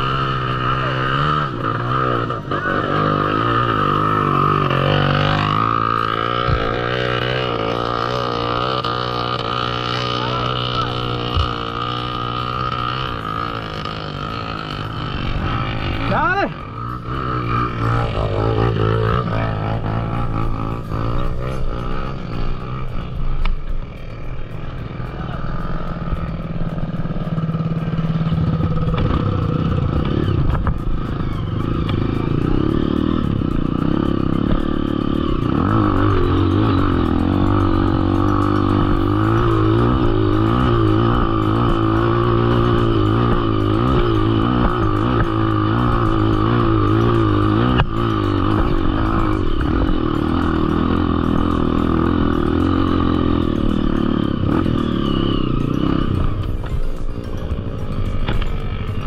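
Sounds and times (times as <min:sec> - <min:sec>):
dirt bike engine running: 0:00.0 - 0:59.0
music: 0:17.2 - 0:59.0.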